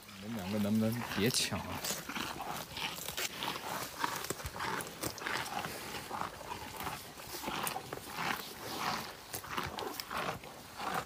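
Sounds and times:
buffalo tearing and munching leaves: 0.0s - 11.0s.

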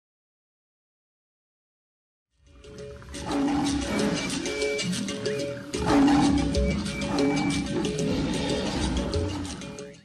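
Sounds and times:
theme music with steady beat: 2.6s - 10.0s.

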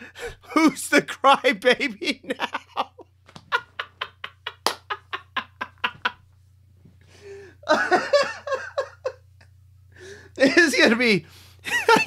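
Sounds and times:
man laughing: 0.0s - 6.3s, 7.6s - 9.3s, 10.4s - 11.0s, 11.6s - 12.0s.

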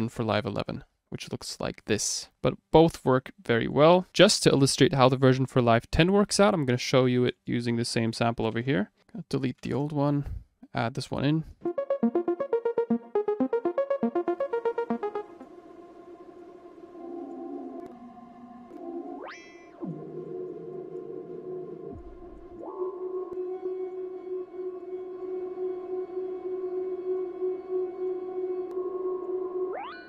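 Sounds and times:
synth arpeggio: 11.6s - 24.4s
atmospheric synth pad: 11.6s - 30.0s
rising pitch sweep: 11.6s - 30.0s.

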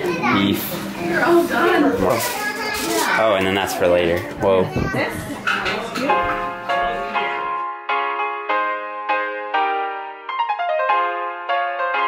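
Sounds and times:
children's voices: 0.0s - 3.7s, 4.4s - 5.4s.

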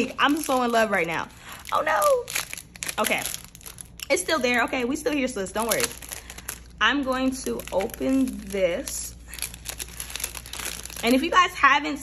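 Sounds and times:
plastic packaging crinkling: 0.0s - 11.7s.

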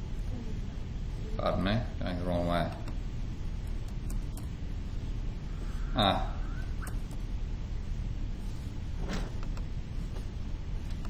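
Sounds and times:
low background hum: 0.0s - 11.0s
computer mouse clicks: 6.8s - 7.2s.

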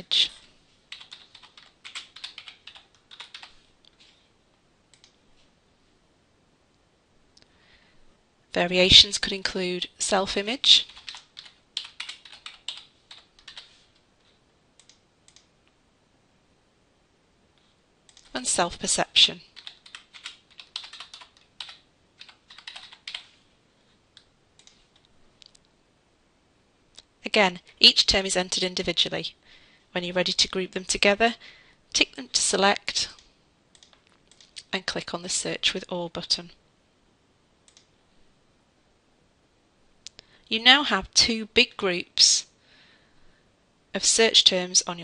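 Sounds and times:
faint keyboard typing: 0.1s - 4.3s, 4.9s - 5.5s, 10.5s - 15.8s, 17.6s - 18.4s, 19.5s - 23.4s, 24.1s - 25.8s, 32.9s - 34.7s, 37.6s - 38.0s.

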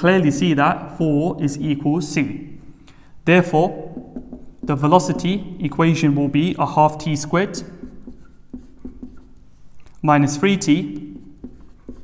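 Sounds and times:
marker writing on whiteboard: 3.4s - 12.0s.

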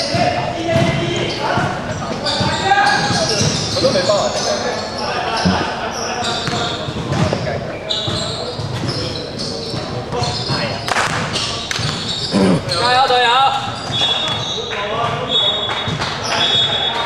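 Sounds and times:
shoes squeaking: 0.1s - 15.6s
players calling out: 1.1s - 6.4s, 12.2s - 13.0s.

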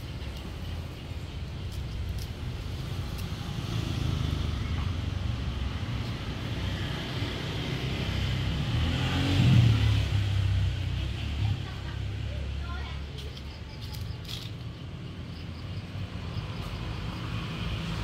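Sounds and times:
motor vehicle rumble: 0.0s - 18.0s.

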